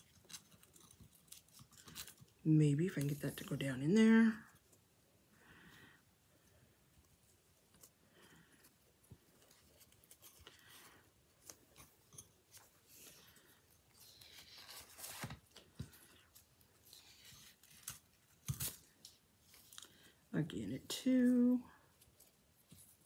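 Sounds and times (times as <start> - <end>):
ribbon rustling and sliding: 6.7 - 20.2.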